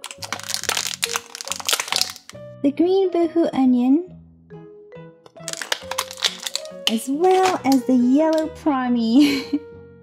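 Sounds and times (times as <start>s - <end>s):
plastic packaging crinkling: 0.0s - 2.4s, 5.4s - 8.5s
soft background music: 0.0s - 10.0s.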